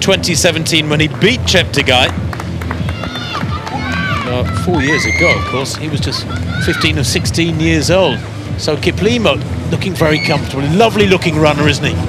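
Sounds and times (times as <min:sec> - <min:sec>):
steady low hum: 0:05.8 - 0:12.0.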